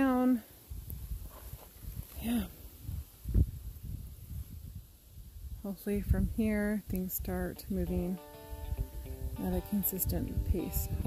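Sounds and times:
wind and handling rumble: 0:00.0 - 0:11.0.

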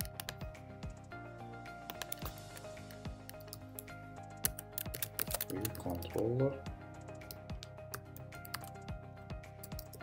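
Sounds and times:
keyboard typing clicks: 0:01.9 - 0:02.6, 0:03.3 - 0:06.0, 0:07.0 - 0:08.9, 0:09.6 - 0:10.0.

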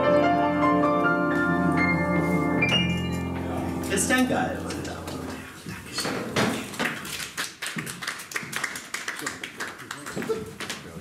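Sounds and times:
audience applause: 0:06.6 - 0:11.0.

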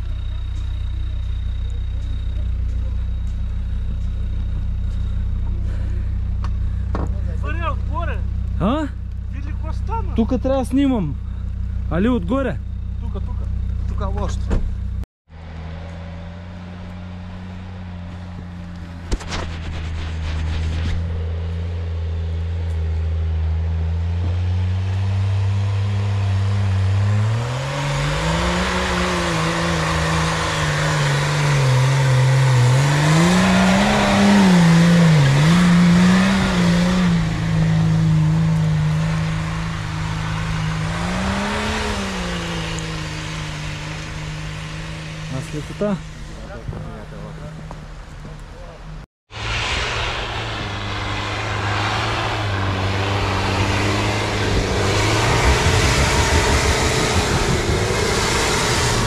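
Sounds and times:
suv engine revving: 0:00.0 - 0:59.0.

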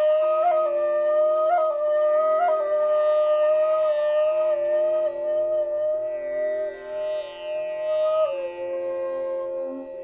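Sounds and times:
bamboo flute long note: 0:00.0 - 0:10.0.

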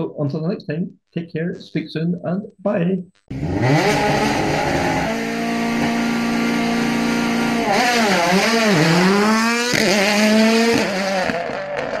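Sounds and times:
racing car engine at high revs: 0:03.3 - 0:12.0.

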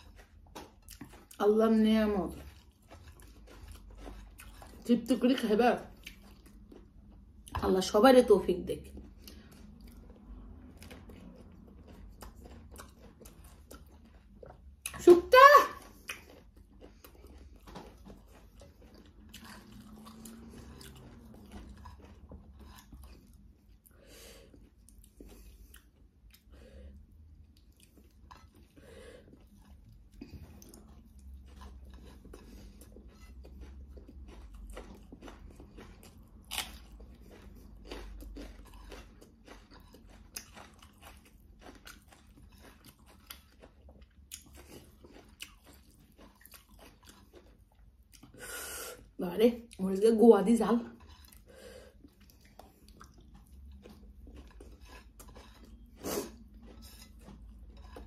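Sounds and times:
chewing and mouth smacks: 0:00.0 - 0:08.0, 0:08.8 - 0:15.1, 0:15.8 - 0:49.9, 0:50.8 - 0:58.0.

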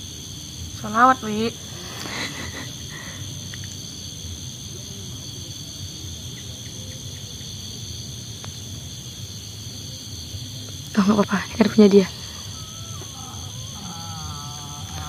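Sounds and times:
crickets trilling: 0:00.0 - 0:15.0.

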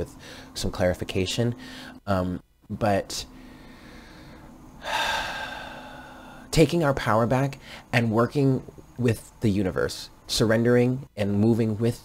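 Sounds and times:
person breathing through mouth: 0:03.4 - 0:06.5.

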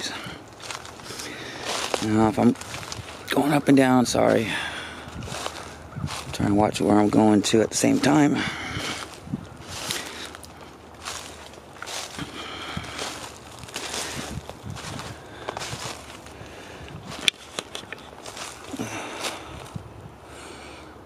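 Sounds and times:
footsteps crunching through dry leaves: 0:00.0 - 0:20.2.

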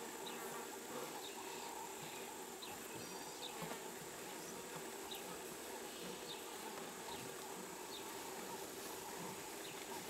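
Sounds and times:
flies buzzing: 0:00.0 - 0:10.0.

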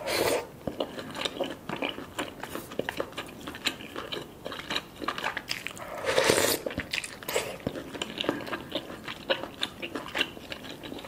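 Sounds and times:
loud hissing noodle slurp: 0:00.0 - 0:00.5, 0:05.9 - 0:06.7
wet chewing with mouth clicks: 0:00.0 - 0:11.0.

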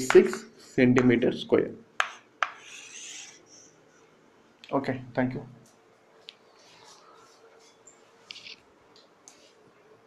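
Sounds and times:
chalk tapping on blackboard: 0:02.0 - 0:03.4
chalk scraping on blackboard: 0:02.0 - 0:03.7.

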